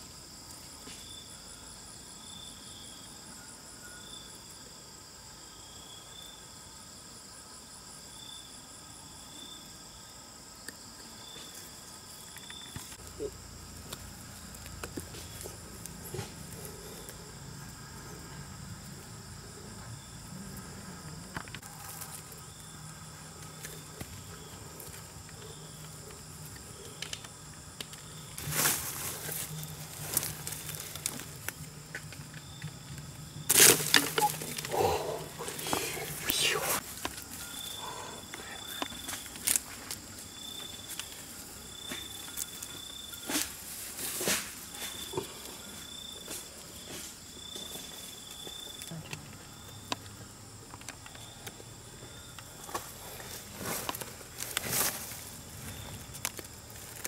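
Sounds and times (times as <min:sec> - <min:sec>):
crickets and insects chirping: 0:00.0 - 0:57.0
sticks and twine rustling: 0:11.4 - 0:17.3, 0:21.4 - 0:49.4, 0:52.5 - 0:57.0.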